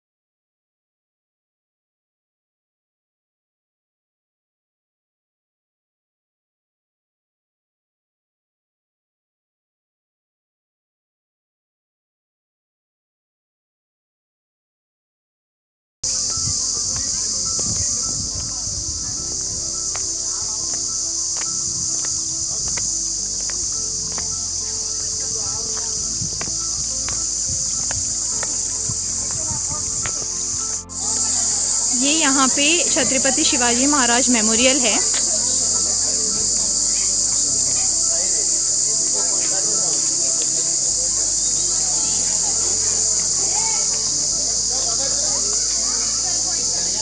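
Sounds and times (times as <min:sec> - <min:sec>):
insects buzzing: 0:16.0 - 0:47.0.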